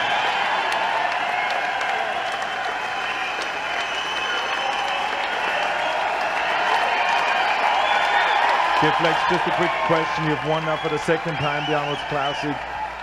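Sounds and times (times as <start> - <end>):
large audience applauding: 0.0 - 13.0.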